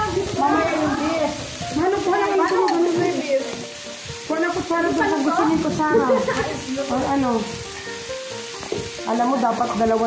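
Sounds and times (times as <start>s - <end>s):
voices: 0.0s - 8.0s, 9.0s - 10.0s
pork sizzling on a grill: 0.0s - 10.0s.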